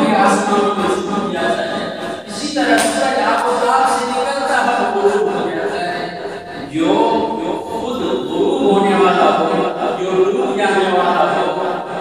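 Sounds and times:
man chanting in a reverberant hall: 0:00.0 - 0:12.0.

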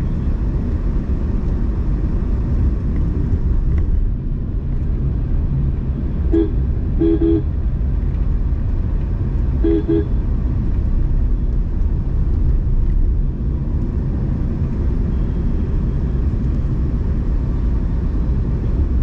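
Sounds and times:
road and engine rumble in car: 0:00.0 - 0:19.0
car horn tooting: 0:06.3 - 0:07.5, 0:09.6 - 0:10.3.

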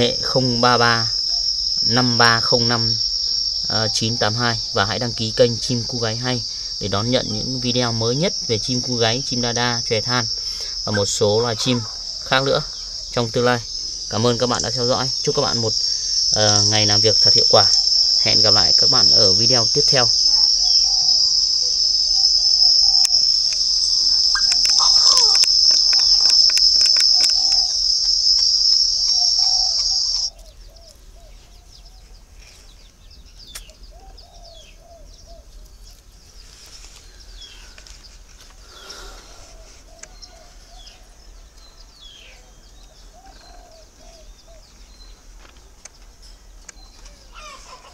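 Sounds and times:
high-pitched insect buzz: 0:00.0 - 0:30.6, 0:35.9 - 0:42.4
scattered clicks: 0:23.0 - 0:30.3.

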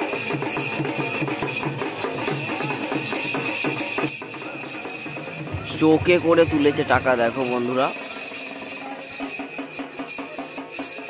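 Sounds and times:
barrel drum beaten with sticks: 0:00.0 - 0:08.4.

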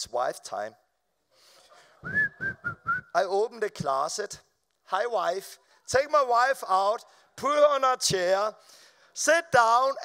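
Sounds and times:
man whistling short notes: 0:02.0 - 0:03.2.

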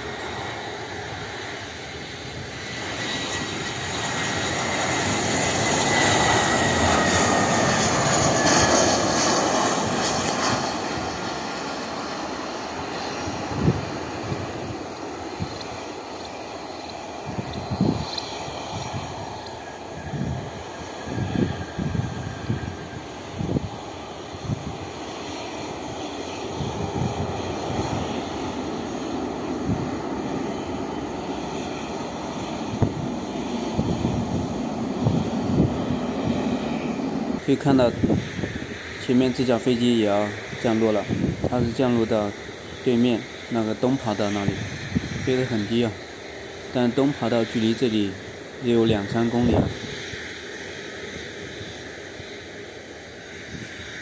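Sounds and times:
jet airliner passing: 0:00.0 - 0:54.0
wind thumping on microphone: 0:13.3 - 0:14.8, 0:17.2 - 0:23.8, 0:32.4 - 0:36.9.

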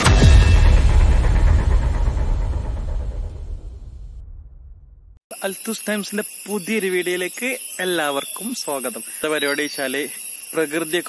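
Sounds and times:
deep cinematic boom rumble: 0:00.0 - 0:05.2.

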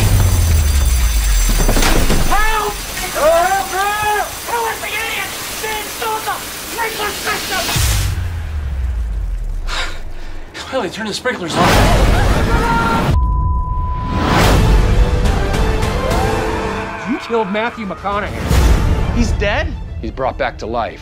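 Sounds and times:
heavy water spray rushing: 0:00.0 - 0:10.4.

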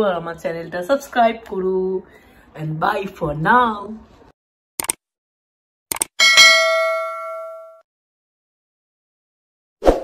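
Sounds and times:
quick clicks: 0:04.8 - 0:05.0, 0:05.9 - 0:06.1
bell chime: 0:06.2 - 0:07.8.

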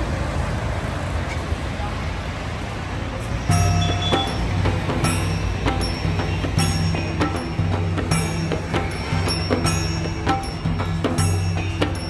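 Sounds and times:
road traffic: 0:00.0 - 0:12.0
music with strong bass: 0:03.5 - 0:12.0.

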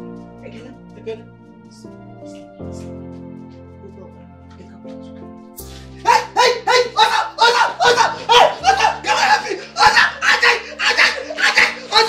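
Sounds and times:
soft background music: 0:00.0 - 0:12.0
person making rapid cries: 0:06.0 - 0:12.0.

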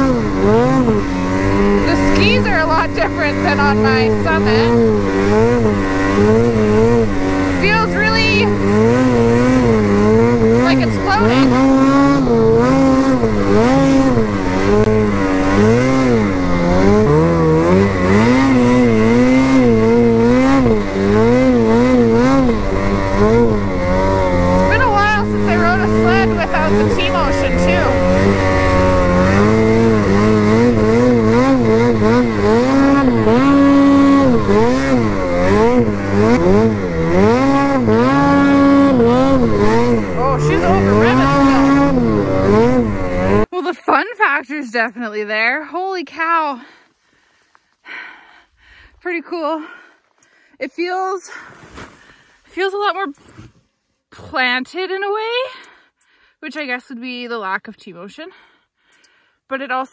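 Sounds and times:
snowmobile engine revving: 0:00.0 - 0:46.6.

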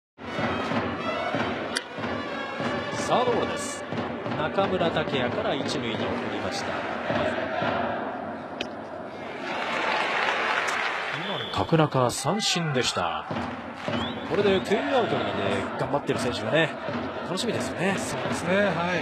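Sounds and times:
cheering section drums: 0:00.2 - 0:08.4, 0:09.2 - 0:19.0
crowd chanting: 0:05.6 - 0:10.1, 0:13.0 - 0:19.0
ballpark crowd din: 0:13.0 - 0:19.0.

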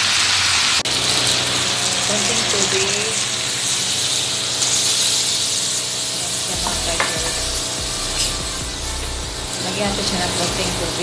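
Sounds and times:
food sizzling in a wok: 0:00.0 - 0:11.0.

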